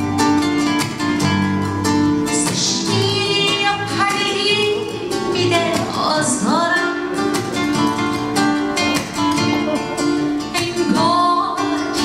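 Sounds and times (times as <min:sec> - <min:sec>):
acoustic guitar music: 0:00.0 - 0:12.0.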